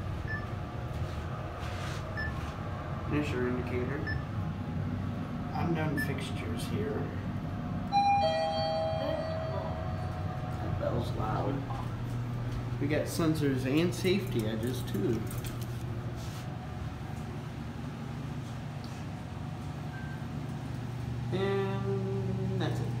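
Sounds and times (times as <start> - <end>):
elevator hum: 0.0 - 23.0
two-tone elevator arrival chime: 7.9 - 10.6.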